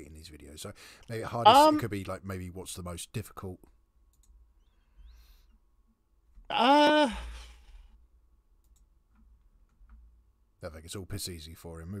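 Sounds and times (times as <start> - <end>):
person saying uh: 1.2 - 1.9
tiny clicks: 4.1 - 4.4.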